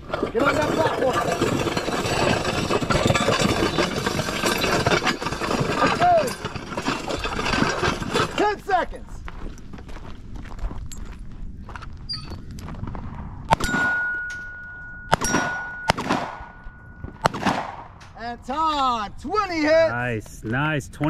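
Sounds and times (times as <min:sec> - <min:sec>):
sled scraping across gravel: 0:00.0 - 0:10.2
running footsteps on gravel: 0:09.0 - 0:13.4.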